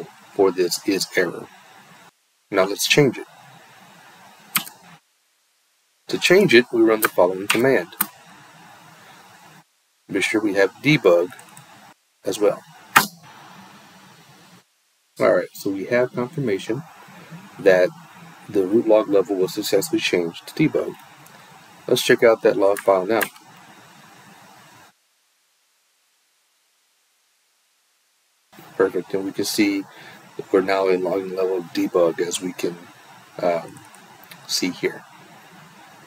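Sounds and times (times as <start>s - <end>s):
faint background hiss: 0.0s - 36.0s.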